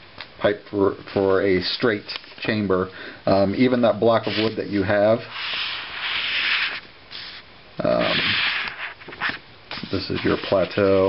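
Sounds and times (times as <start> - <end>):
marker scratching on paper: 4.2 - 10.8.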